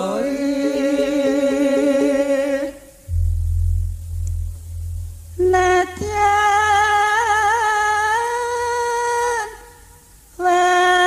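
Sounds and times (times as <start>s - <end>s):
person singing long note: 0.6s - 9.7s
deep steady low tone: 3.1s - 8.6s.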